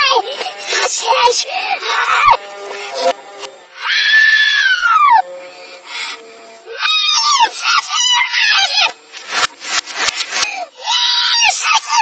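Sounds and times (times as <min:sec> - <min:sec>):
boy's shouting played backwards: 0:00.0 - 0:03.2, 0:03.8 - 0:05.3, 0:06.7 - 0:09.0, 0:10.6 - 0:12.0.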